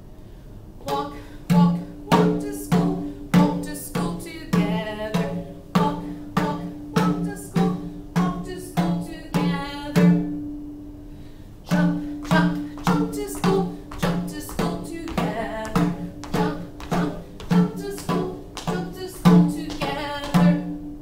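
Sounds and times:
hand drum beat: 0:00.9 - 0:10.4, 0:11.7 - 0:20.8.

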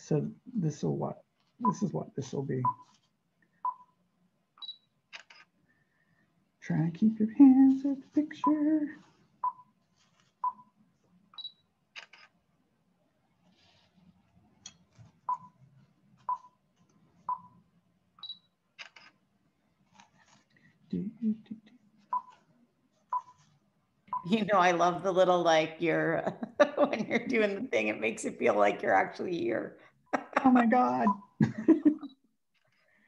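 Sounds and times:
timer beeping: 0:01.6 - 0:01.8, 0:03.6 - 0:03.9.

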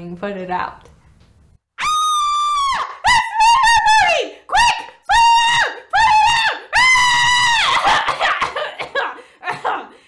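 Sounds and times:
person screaming: 0:01.8 - 0:08.5.

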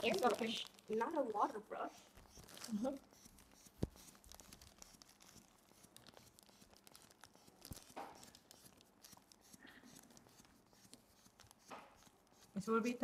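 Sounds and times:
plastic crinkling and clicking: 0:00.0 - 0:12.1
plastic rustle: 0:00.0 - 0:12.1.

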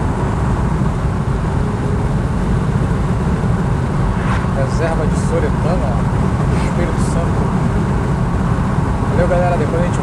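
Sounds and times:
road and tyre rumble in car: 0:00.0 - 0:10.0.

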